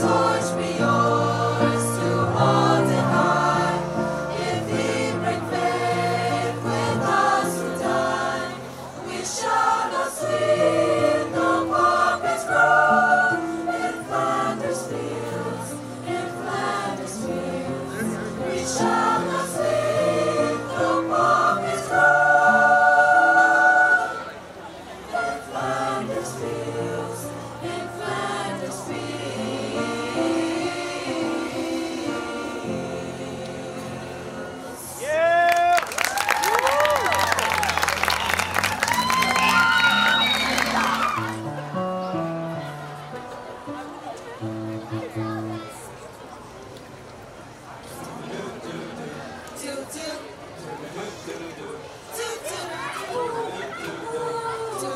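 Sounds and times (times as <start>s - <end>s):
choir singing in harmony: 0.0s - 35.0s, 47.9s - 50.2s, 50.8s - 54.9s.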